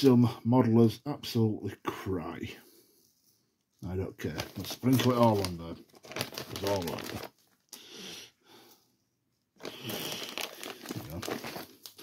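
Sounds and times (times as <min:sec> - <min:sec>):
grass fibres crinkling: 0:03.8 - 0:07.6, 0:09.6 - 0:12.0.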